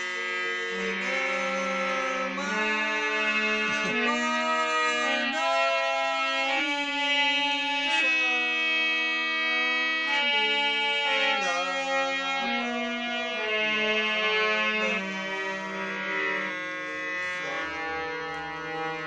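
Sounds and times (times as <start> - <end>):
harmonium melody: 0.0 - 19.0.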